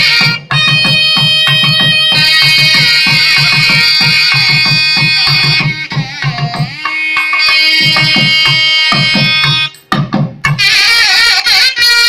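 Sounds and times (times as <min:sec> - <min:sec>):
reed pipes playing ornamented melody: 0:00.0 - 0:09.9, 0:10.6 - 0:12.0
drum strokes: 0:00.0 - 0:12.0.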